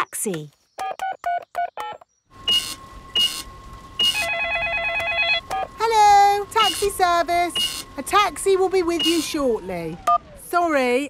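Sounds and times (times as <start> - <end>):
telephone line hiss: 2.4 - 9.6.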